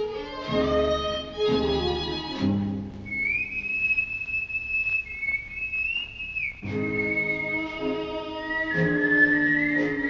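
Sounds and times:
whistled melody: 3.0 - 10.0.

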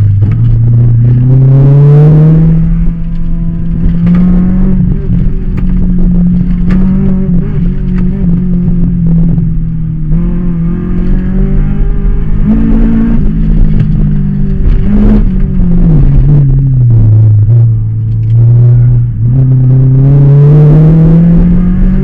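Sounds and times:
car engine revving: 0.0 - 22.0.

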